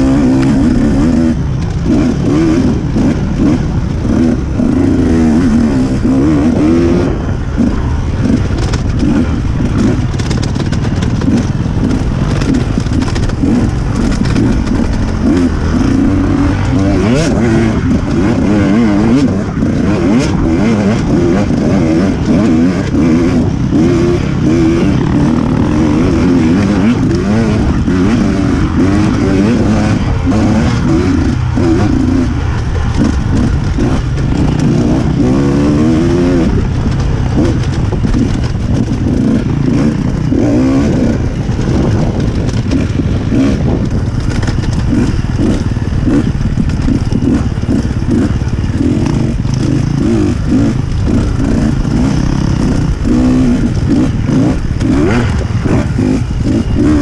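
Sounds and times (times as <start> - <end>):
dirt bike engine revving: 0.0 - 57.0
bike knocks and rattles: 8.2 - 20.7, 36.1 - 57.0.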